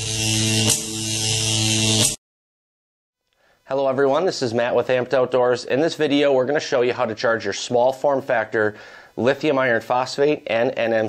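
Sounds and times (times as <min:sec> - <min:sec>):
electric buzz: 0:00.0 - 0:02.2.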